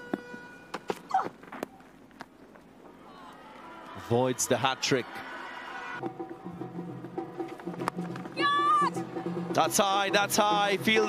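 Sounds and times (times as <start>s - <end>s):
faint ground ambience: 0.0s - 5.6s.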